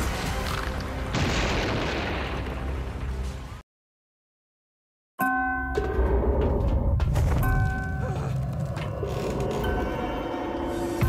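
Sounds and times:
music: 0.0s - 3.6s, 5.2s - 11.0s.

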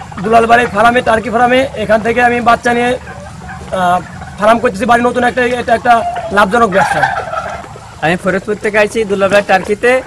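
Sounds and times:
turkeys calling: 0.0s - 10.0s.

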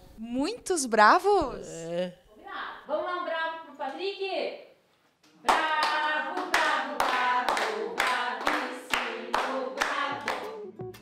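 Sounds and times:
people chanting: 5.4s - 10.7s
group clapping in rhythm: 5.4s - 11.0s.

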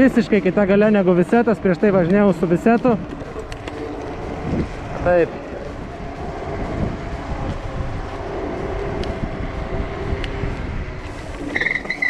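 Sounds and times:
wind and road noise: 0.0s - 12.0s
electric motor whine: 3.3s - 12.0s.

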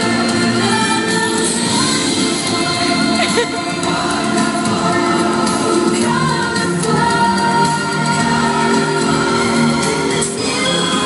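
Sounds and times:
choir singing held notes: 0.0s - 11.0s
loud music: 0.0s - 11.0s.

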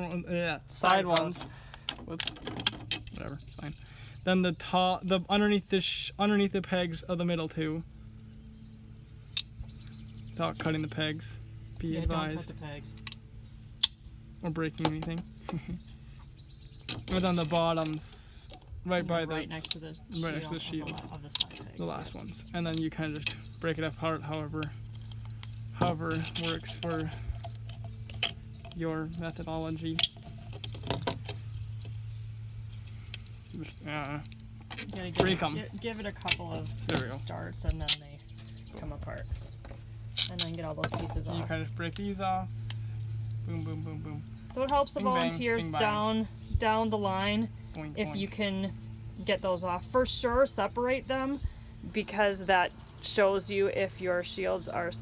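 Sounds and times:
faint steady hum: 0.0s - 55.0s.

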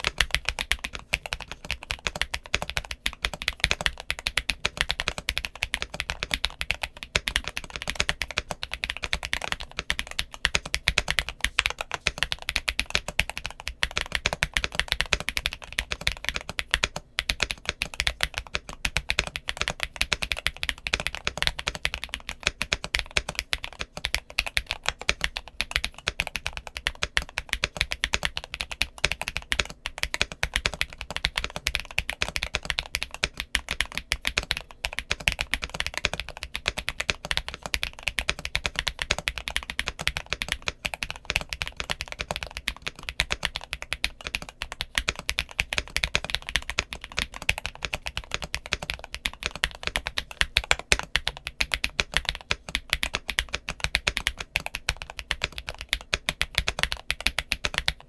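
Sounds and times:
fast mechanical keyboard typing: 0.0s - 58.0s.

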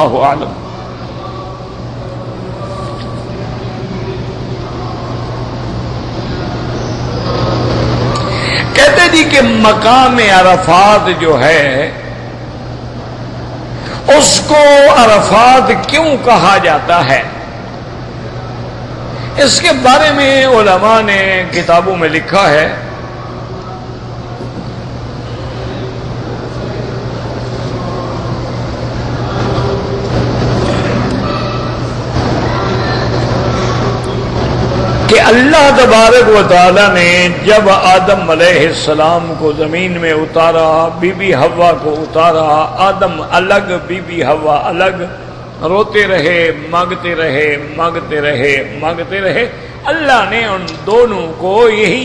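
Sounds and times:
continuous rushing noise: 0.0s - 52.0s
low mechanical rumble: 0.0s - 52.0s
steady low hum: 0.0s - 52.0s.

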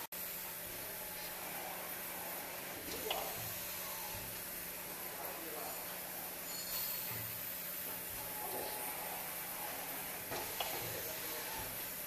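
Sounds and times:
pneumatic machine hiss: 6.4s - 12.0s.

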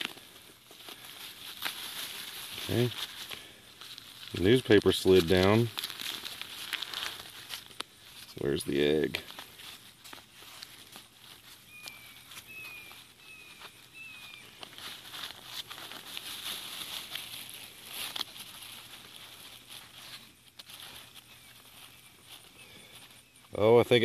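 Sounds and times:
paper and plastic rustling: 0.0s - 23.1s
bird chirping: 11.2s - 15.3s, 19.5s - 24.0s.

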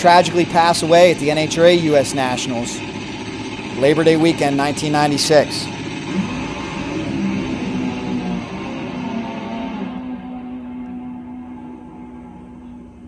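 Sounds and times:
drag motorcycle engine launching: 0.0s - 13.0s.

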